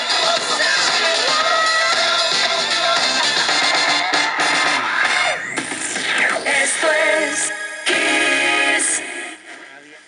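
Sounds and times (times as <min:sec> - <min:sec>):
music from radio loudspeaker: 0:00.0 - 0:10.0.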